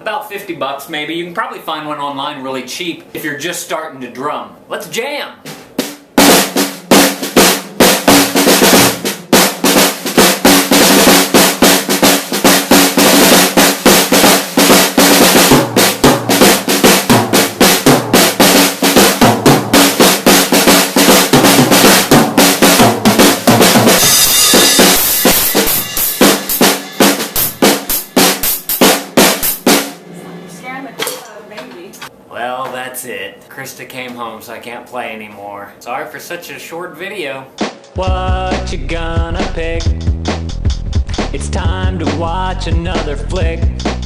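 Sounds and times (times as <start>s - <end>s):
acoustic drum kit groove: 4.9s - 33.0s, 36.2s - 44.0s
cymbal crash: 23.2s - 31.1s.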